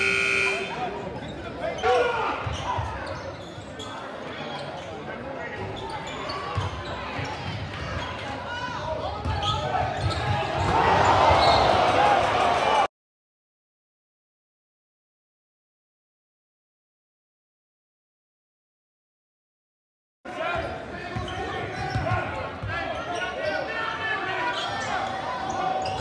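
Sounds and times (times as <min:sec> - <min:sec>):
scoreboard horn: 0:00.0 - 0:00.8
crowd chatter: 0:00.0 - 0:12.9, 0:20.3 - 0:26.0.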